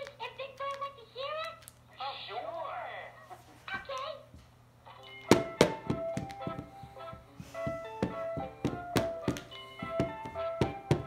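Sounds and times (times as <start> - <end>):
drumming on plastic lid: 5.3 - 11.0.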